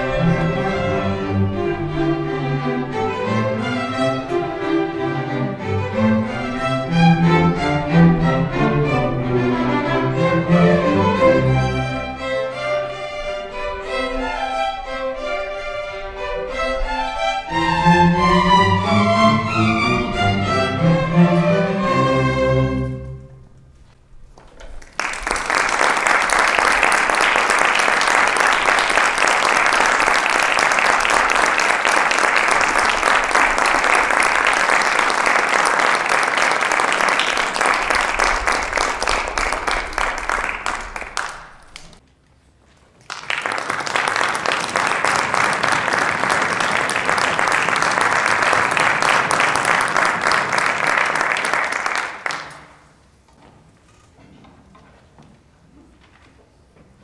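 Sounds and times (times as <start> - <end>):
audience applauding: 24.6 - 42.0, 43.0 - 52.9.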